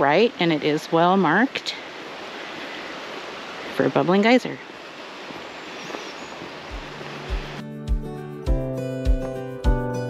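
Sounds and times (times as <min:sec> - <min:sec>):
creek water rushing: 0:00.0 - 0:07.7
acoustic guitar: 0:06.7 - 0:10.0
low even beat: 0:06.7 - 0:10.0.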